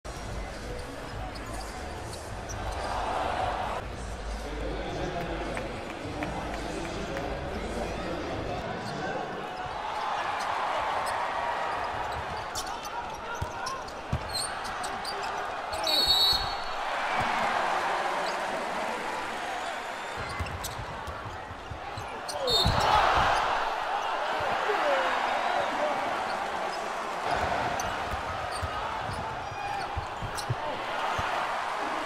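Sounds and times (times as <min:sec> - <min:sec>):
arena crowd noise: 0:00.0 - 0:32.0
basketball bouncing on court: 0:11.9 - 0:14.9, 0:20.2 - 0:23.4, 0:27.3 - 0:31.5
shoe squeaks and knocks: 0:11.9 - 0:16.8, 0:20.1 - 0:23.6, 0:27.8 - 0:31.3.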